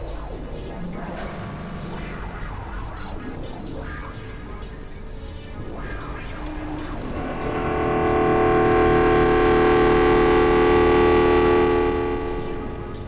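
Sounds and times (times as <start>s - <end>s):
synthesizer drone chord: 0.2s - 13.0s.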